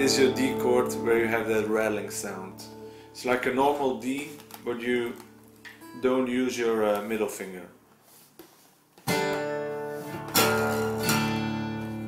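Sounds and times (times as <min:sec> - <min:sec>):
acoustic guitar chord strums: 0:00.0 - 0:07.5, 0:08.1 - 0:12.0.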